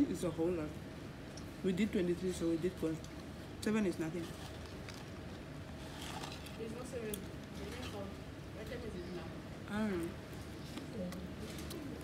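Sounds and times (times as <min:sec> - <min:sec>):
steady low background hum: 0:00.0 - 0:12.0.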